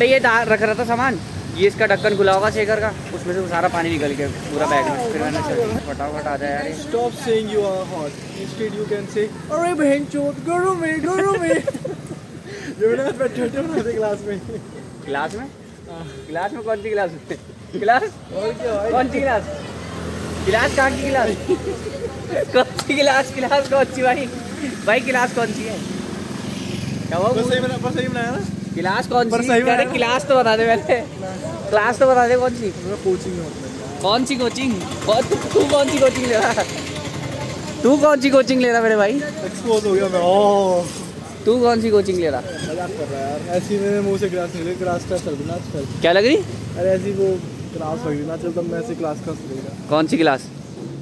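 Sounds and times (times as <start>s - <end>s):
man talking: 0.0s - 19.6s, 27.0s - 36.7s
light street traffic: 0.0s - 51.0s
young men laughing: 9.2s - 16.0s, 16.6s - 19.3s, 20.9s - 25.5s, 29.2s - 32.0s.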